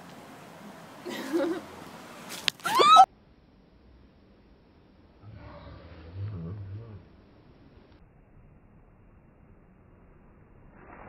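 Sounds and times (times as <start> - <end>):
high-pitched rising cry: 2.6 - 3.1.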